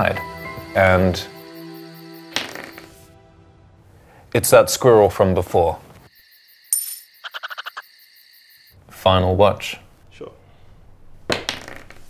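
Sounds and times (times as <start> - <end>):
insect drone: 0.0 - 3.1, 6.1 - 8.8.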